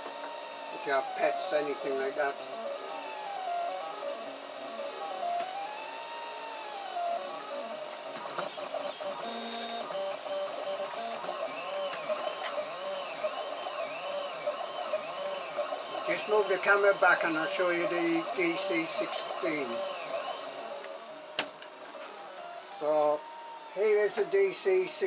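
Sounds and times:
printer stepper motors whining: 0:00.0 - 0:25.0.

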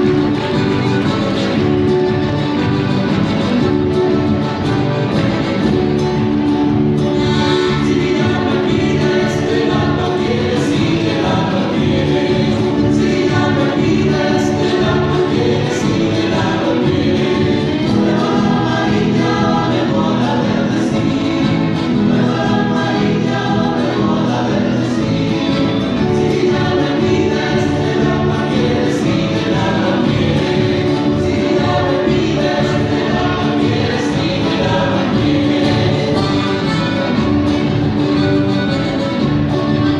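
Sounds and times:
folk dance music with group singing: 0:00.0 - 0:39.9.

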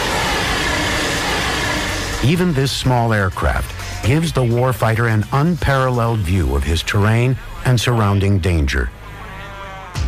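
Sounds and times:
drone propellers whirring: 0:00.0 - 0:04.2.

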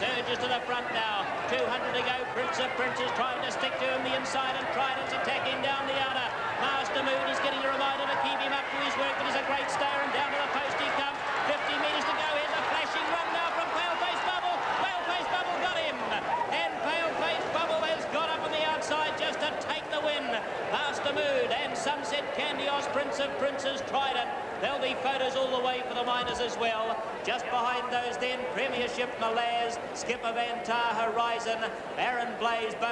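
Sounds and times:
race caller commentary: 0:00.0 - 0:32.9.

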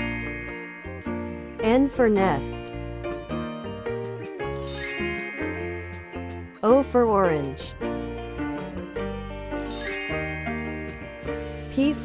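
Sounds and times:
rising chime sound effect: 0:00.0 - 0:01.6, 0:04.6 - 0:06.6, 0:09.6 - 0:11.4
children's background music: 0:00.0 - 0:12.0.

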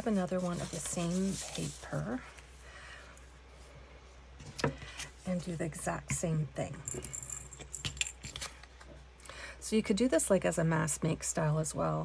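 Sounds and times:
paper rustling: 0:00.0 - 0:02.4.

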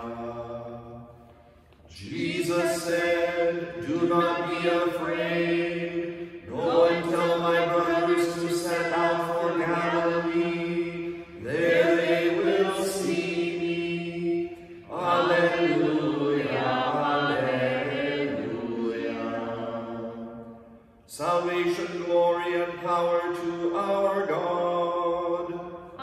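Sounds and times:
man chanting: 0:21.1 - 0:25.6.

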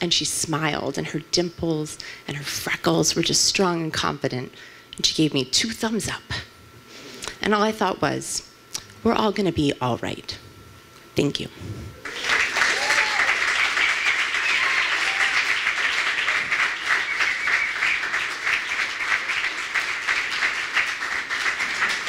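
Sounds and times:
audience applauding: 0:12.0 - 0:22.0.

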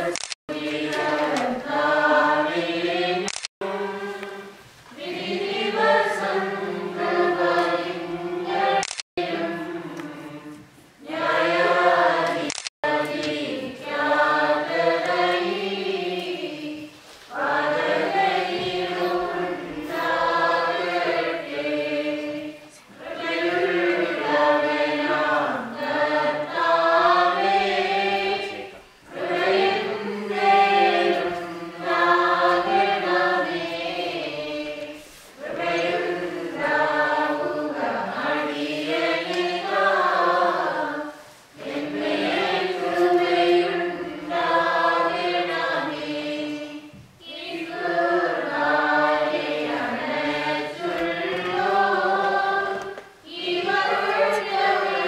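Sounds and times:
choir singing a hymn: 0:00.0 - 0:55.0.

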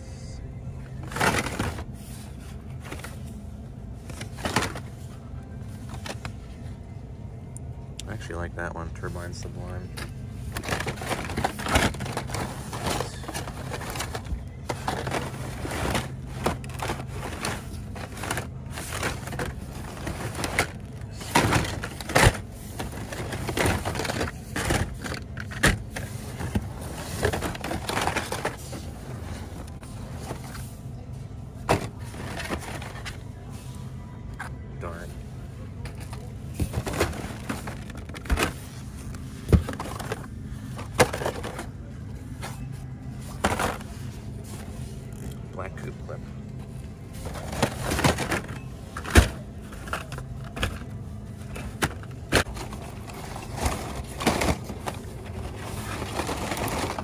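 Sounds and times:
steady low hum: 0:00.0 - 0:57.0
blister packs clacking together: 0:01.0 - 0:02.0, 0:09.9 - 0:30.6, 0:35.8 - 0:42.6, 0:46.6 - 0:57.0
faint voices: 0:11.0 - 0:57.0.

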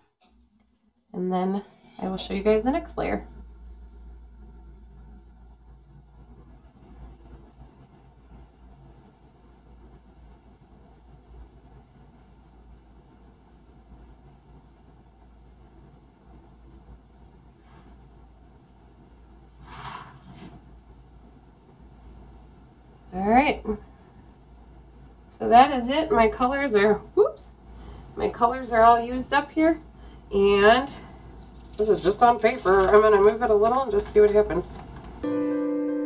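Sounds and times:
steady low hum: 0:00.0 - 0:35.5
faint handling ticks: 0:30.4 - 0:35.2.

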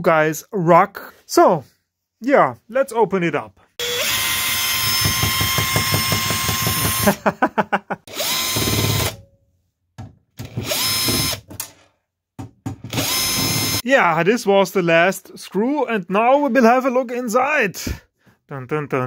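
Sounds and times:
person laughing: 0:07.0 - 0:08.1.

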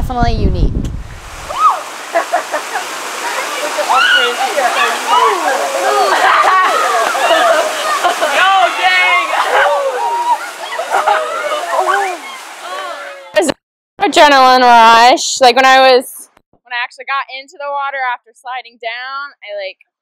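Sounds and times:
water rushing down rock slide: 0:01.4 - 0:13.3
people shouting and laughing: 0:01.5 - 0:13.4.

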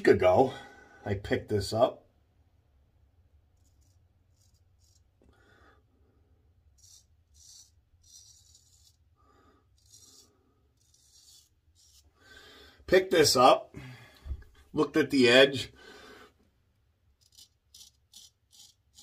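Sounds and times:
straight razor scraping stubble: 0:03.5 - 0:05.3, 0:06.7 - 0:12.2, 0:17.1 - 0:19.0.

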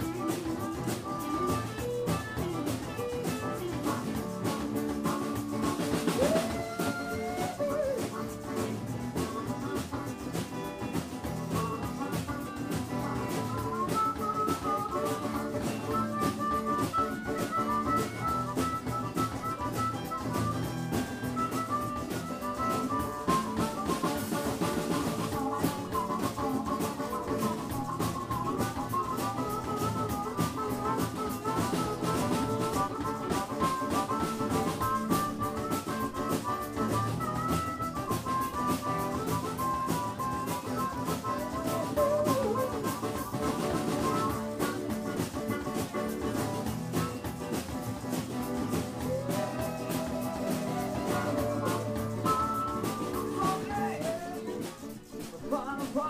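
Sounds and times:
bass guitar: 0:00.0 - 0:55.0
guitar lead melody: 0:00.0 - 0:55.2
drum kit groove: 0:00.0 - 0:56.0.

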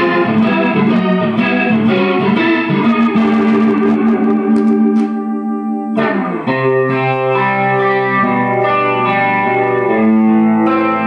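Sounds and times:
electric guitar ringing chords: 0:00.0 - 0:11.0.

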